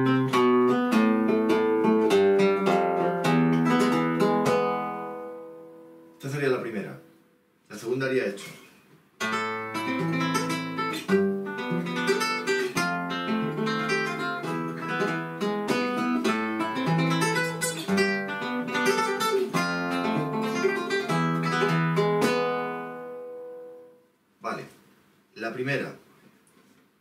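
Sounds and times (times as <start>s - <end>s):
flamenco guitar playing: 0.0s - 6.2s, 8.5s - 24.0s.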